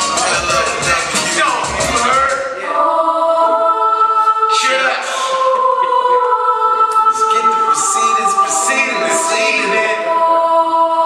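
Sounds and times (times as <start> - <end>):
hip-hop backing track: 0.0 - 2.8
choir-like held notes: 0.0 - 11.0.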